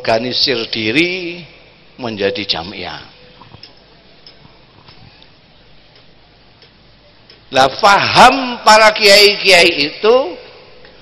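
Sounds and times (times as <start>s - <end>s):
soft ticks: 3.3s - 5.3s, 5.9s - 7.5s.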